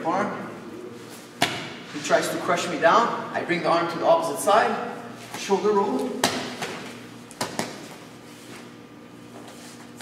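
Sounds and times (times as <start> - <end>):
bodies slapping on a mat: 1.4 - 1.8, 6.2 - 8.0.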